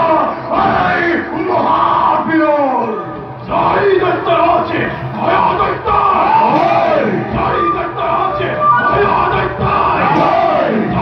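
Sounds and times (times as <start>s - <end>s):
crowd voices: 0.0s - 11.0s
music: 0.0s - 11.0s.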